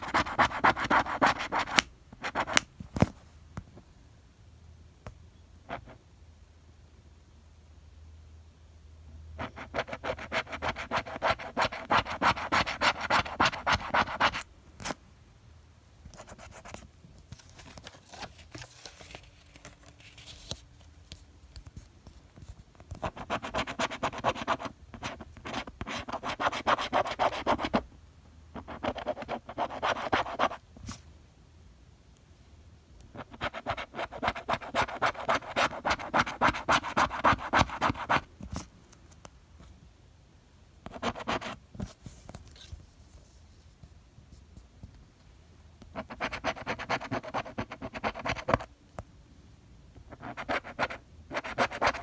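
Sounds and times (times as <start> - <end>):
scraper scratching lottery ticket: 9.7 - 14.4, 33.2 - 38.2, 50.1 - 52.0.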